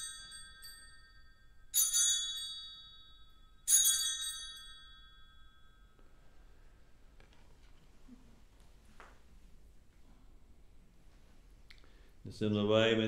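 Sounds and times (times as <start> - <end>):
altar bell ringing: 0.0 - 6.8.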